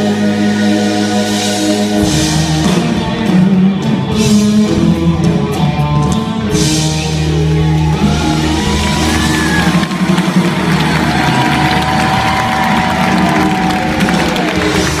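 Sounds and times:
live rock band holding chord: 0.0s - 15.0s
audience cheering and whistling: 7.4s - 15.0s.

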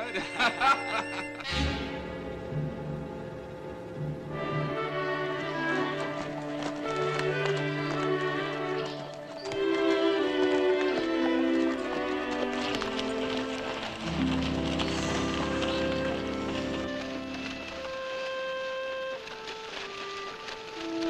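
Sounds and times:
horses' hooves: 0.0s - 21.0s
orchestral score of held notes: 0.0s - 21.0s.

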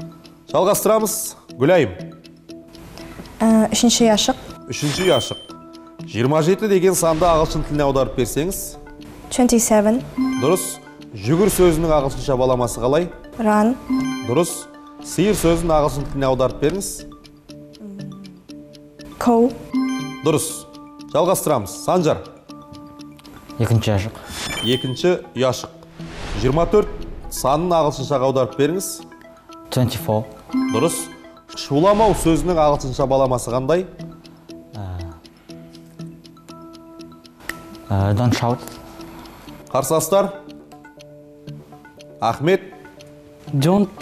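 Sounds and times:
clock-like tick-tock beat: 0.0s - 44.0s
soft sustained music tones: 0.0s - 44.0s
held electronic chords: 2.0s - 24.0s, 24.6s - 39.7s.

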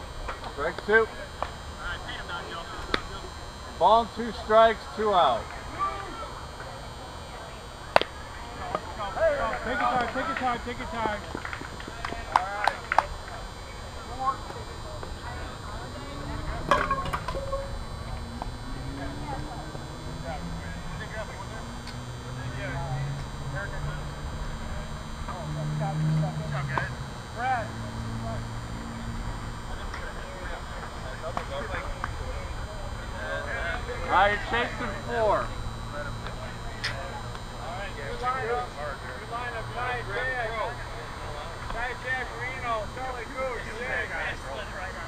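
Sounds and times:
distant players chattering and calling: 0.0s - 45.0s
low droning hum: 0.0s - 45.0s.

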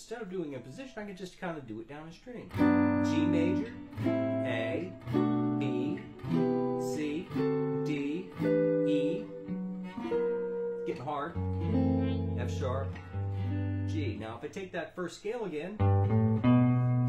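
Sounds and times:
archtop guitar playing chords: 0.4s - 1.0s, 2.5s - 14.4s, 15.8s - 17.0s.

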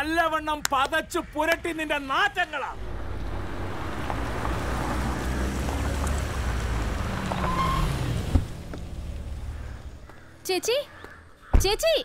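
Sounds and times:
car engine running: 2.8s - 10.2s.

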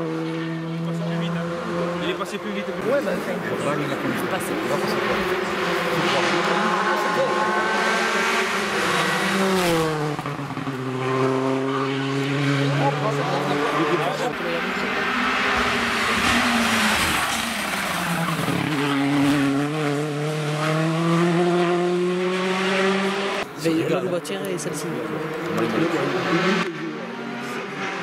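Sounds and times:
rally car engine at high revs: 0.0s - 28.0s.

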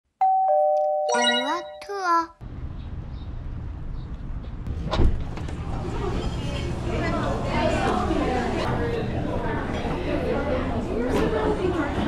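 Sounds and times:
two-note ding-dong chime: 0.2s - 2.0s.

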